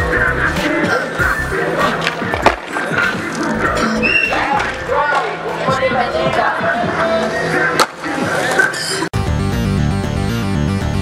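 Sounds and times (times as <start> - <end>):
background music: 0.0 - 11.0
skateboard clack on concrete: 2.0 - 5.4, 7.8 - 8.1.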